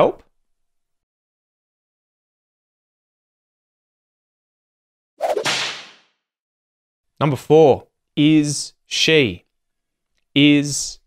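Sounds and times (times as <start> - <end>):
whoosh swish: 5.2 - 6.0.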